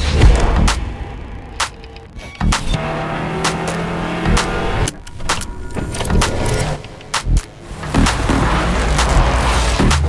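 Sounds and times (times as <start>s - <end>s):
car engine accelerating: 2.2s - 10.0s.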